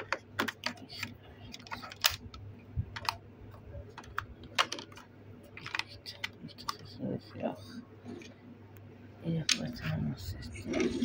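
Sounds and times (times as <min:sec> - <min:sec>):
plastic toy parts clicking: 0:00.0 - 0:02.3, 0:04.0 - 0:05.0.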